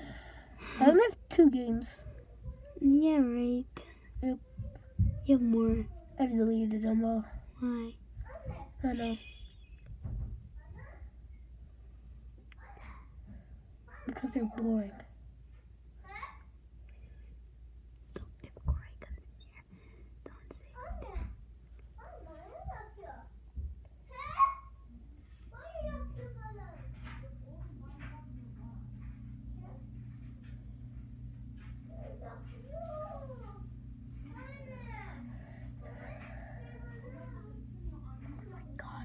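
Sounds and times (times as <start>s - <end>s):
steady low hum: 0.0s - 39.0s
soft thump: 10.0s - 10.5s
children whispering: 18.2s - 21.1s.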